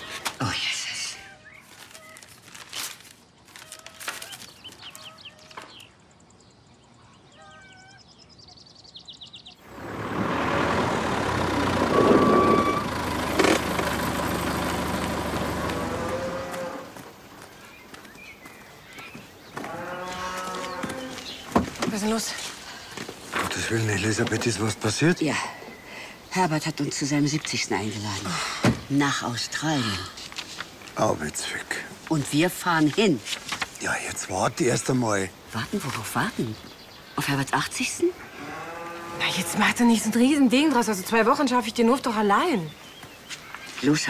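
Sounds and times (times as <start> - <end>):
tractor engine running: 9.6 - 16.8
cow mooing: 15.7 - 17.0, 38.3 - 39.8.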